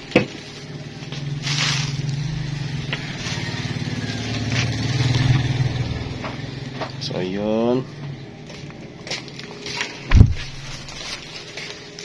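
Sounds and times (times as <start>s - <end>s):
low motor drone: 0.0s - 11.4s
handling rustle: 9.5s - 12.0s.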